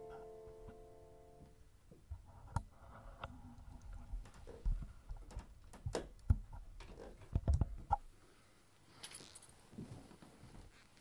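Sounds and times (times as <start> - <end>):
soft footsteps across a room: 1.4 - 5.6, 8.8 - 11.0
light metallic jingle: 8.9 - 9.6.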